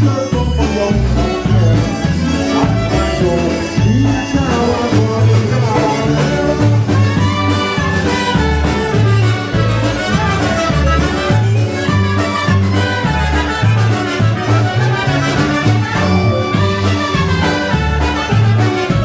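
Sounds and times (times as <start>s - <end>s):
clarinets and trumpet: 0.0s - 19.0s
live polka band playing: 0.0s - 19.0s
steady bass beat: 0.0s - 19.0s.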